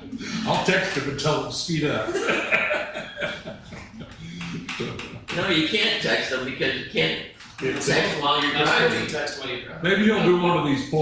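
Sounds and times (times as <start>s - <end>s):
men chuckling quietly: 2.1s - 5.4s.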